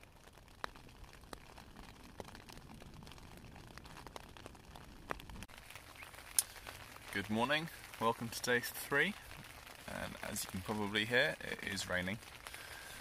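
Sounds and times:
rain pattering on tent fabric: 0.0s - 13.0s.

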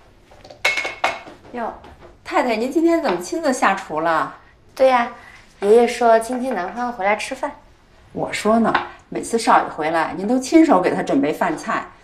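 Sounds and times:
dishes clinking on a counter: 0.5s - 1.5s.

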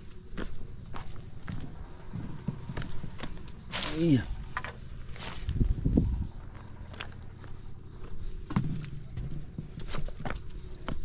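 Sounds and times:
footsteps on rock: 0.0s - 11.0s.

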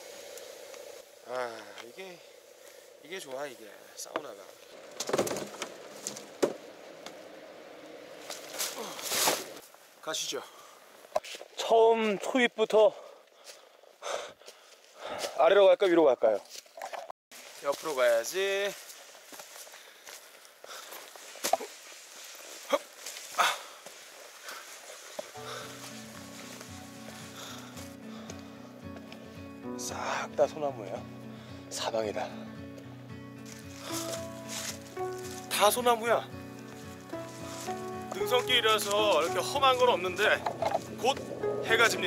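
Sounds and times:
footsteps on leafy dirt trail: 3.6s - 12.3s, 13.0s - 29.6s, 33.4s - 42.0s
fabric and straps rustling: 16.4s - 28.0s, 33.4s - 41.9s
background music: 25.4s - 42.0s.

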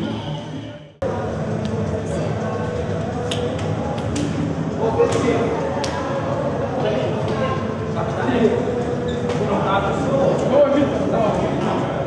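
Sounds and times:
voices chattering: 0.0s - 12.0s
hand claps: 3.2s - 4.4s, 5.1s - 6.0s.

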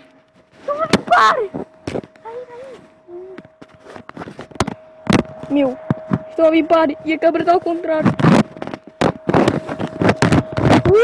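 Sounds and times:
phone microphone rubbing and knocking: 7.8s - 11.0s.

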